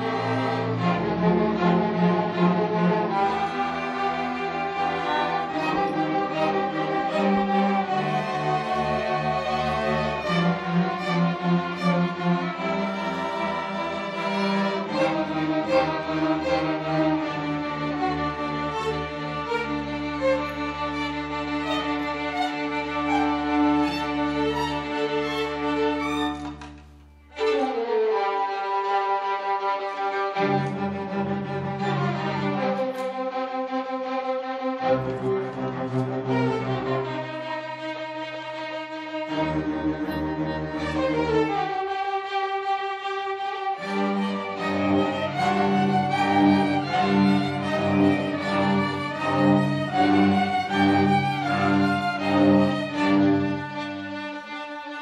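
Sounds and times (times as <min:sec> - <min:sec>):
string orchestra playing held notes: 0:00.0 - 0:55.0.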